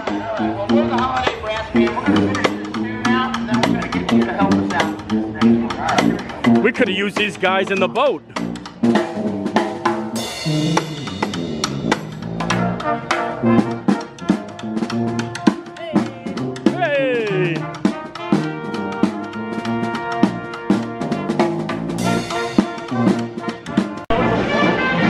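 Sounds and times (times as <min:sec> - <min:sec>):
sousaphone bass: 0:00.0 - 0:17.9
trombones: 0:00.0 - 0:25.0
marching drum beating: 0:00.1 - 0:24.0
trumpet: 0:10.2 - 0:25.0
falling brass glissando: 0:22.0 - 0:23.5, 0:24.1 - 0:25.0.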